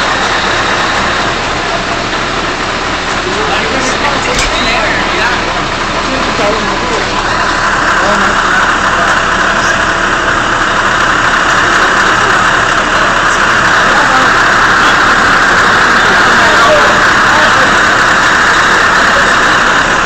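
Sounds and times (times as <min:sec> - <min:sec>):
diesel engine running: 0:00.0 - 0:20.0
rushing noise: 0:00.0 - 0:20.0.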